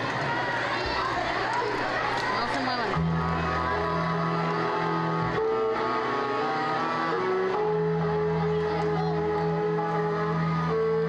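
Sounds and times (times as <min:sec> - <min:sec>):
string orchestra chords: 0:00.0 - 0:11.0
low bass line: 0:03.0 - 0:11.0.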